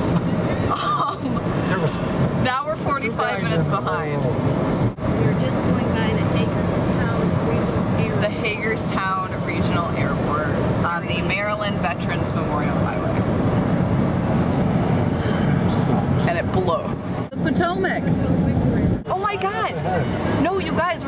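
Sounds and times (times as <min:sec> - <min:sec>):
car road and engine noise: 0:00.0 - 0:21.0
person speaking: 0:02.8 - 0:04.4.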